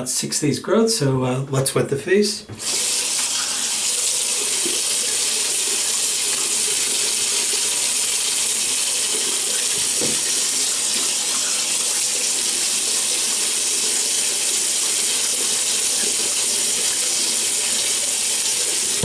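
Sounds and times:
tap running into sink: 2.5s - 5.3s, 9.5s - 11.4s, 18.8s - 19.0s.

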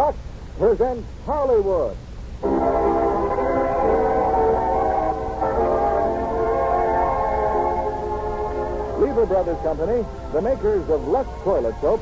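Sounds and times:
orchestral sustained chords: 2.4s - 12.0s.

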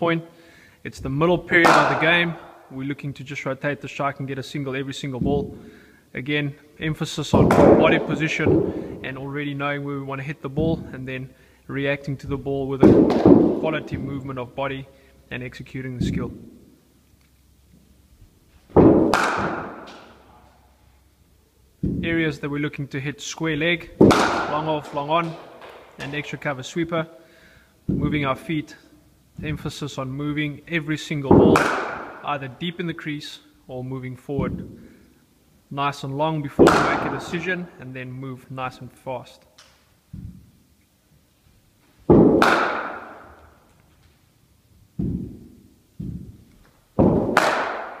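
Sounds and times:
bat striking ball: 1.6s - 2.7s, 7.4s - 9.1s, 12.8s - 14.3s, 18.7s - 20.6s, 23.9s - 26.4s, 31.3s - 32.3s, 36.6s - 37.4s, 42.1s - 43.7s, 45.0s - 48.0s
dull thuds: 5.2s - 5.7s, 6.8s - 9.3s, 10.6s - 10.9s, 12.1s - 14.4s, 15.9s - 16.7s, 18.6s - 20.4s, 21.8s - 22.3s, 27.8s - 28.5s, 29.4s - 29.7s, 31.3s - 32.3s, 34.4s - 35.0s, 40.1s - 40.6s, 42.0s - 43.6s, 44.9s - 48.0s
ball thudding onto turf: 45.0s - 47.5s.

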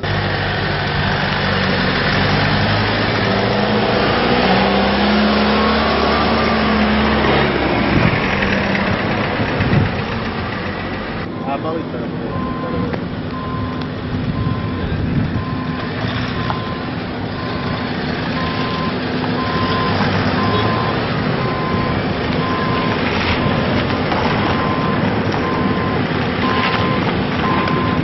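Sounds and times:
vehicles driving: 0.0s - 28.0s
reversing alarm beeping: 4.5s - 7.4s, 11.2s - 28.0s.

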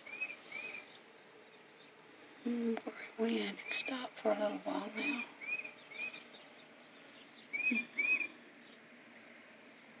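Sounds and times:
bird whistling calls: 7.4s - 8.3s.

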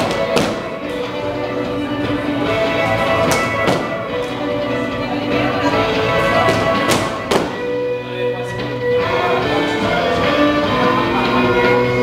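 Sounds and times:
dance music: 0.0s - 12.0s.

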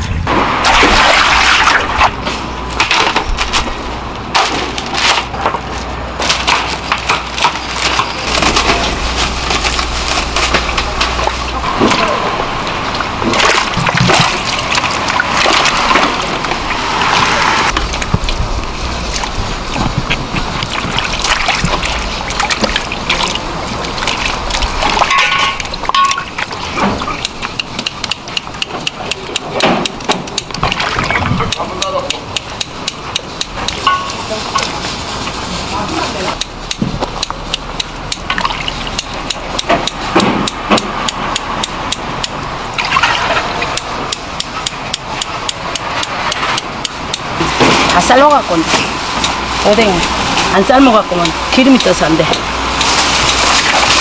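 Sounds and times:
hands sloshing in water: 0.6s - 2.2s, 20.0s - 26.8s.

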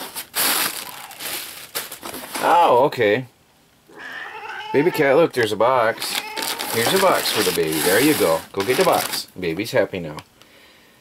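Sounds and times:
plastic packing crinkling: 0.0s - 2.8s, 5.9s - 9.7s.

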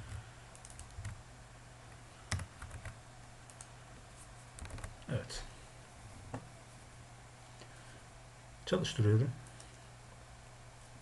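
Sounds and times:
low steady hum: 0.0s - 11.0s
computer keyboard keystrokes: 0.1s - 1.2s, 2.3s - 3.7s, 4.6s - 4.9s.

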